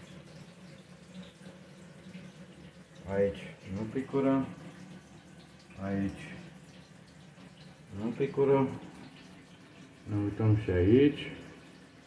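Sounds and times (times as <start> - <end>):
shower water running: 0.0 - 12.0.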